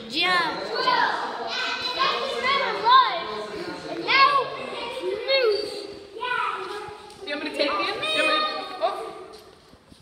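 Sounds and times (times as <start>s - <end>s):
children playing: 0.0s - 9.5s.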